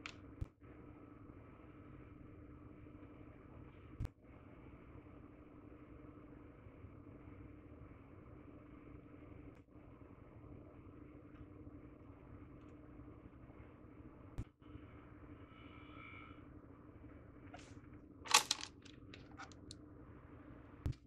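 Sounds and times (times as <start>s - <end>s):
faint steady hum: 0.0s - 21.0s
clicks and scrapes: 18.3s - 19.7s.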